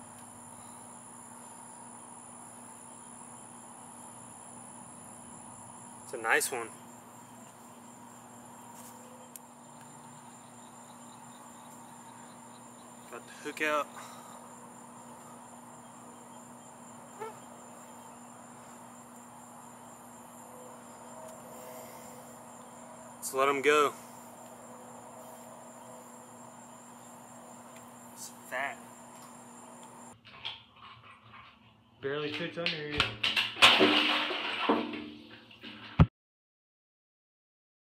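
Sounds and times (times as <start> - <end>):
crickets trilling: 0.0 - 30.2.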